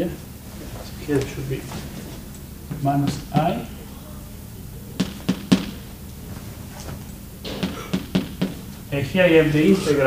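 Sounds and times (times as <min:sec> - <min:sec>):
chalk tapping on blackboard: 0:05.0 - 0:05.8, 0:07.6 - 0:08.7.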